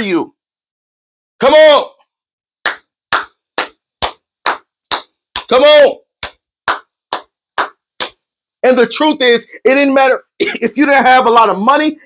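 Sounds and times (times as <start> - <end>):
person clapping hands: 2.6 - 5.6, 6.2 - 8.2.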